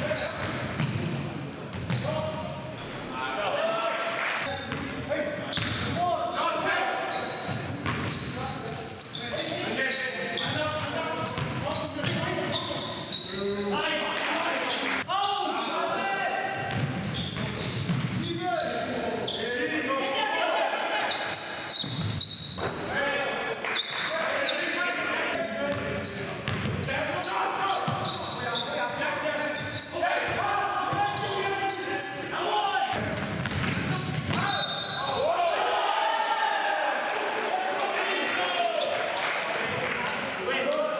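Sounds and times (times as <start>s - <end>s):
players calling out: 14.6s - 39.0s
basketball bouncing on wooden floor: 16.7s - 18.1s, 33.1s - 34.5s.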